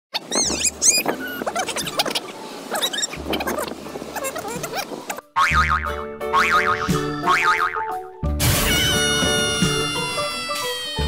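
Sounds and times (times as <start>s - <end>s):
outdoor sound: 0.1s - 11.0s.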